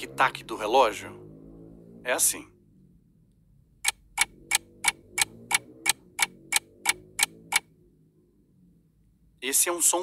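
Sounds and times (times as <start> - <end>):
clock ticking: 3.8 - 7.7.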